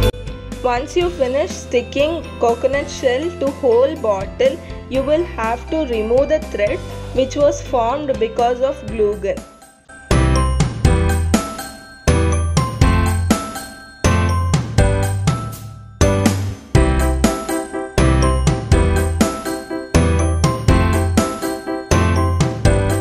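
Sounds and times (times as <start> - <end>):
light tune over steady beat: 0.0 - 23.0.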